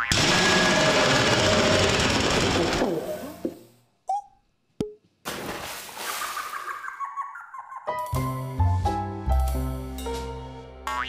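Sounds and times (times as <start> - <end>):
music: 7.8 - 11.0.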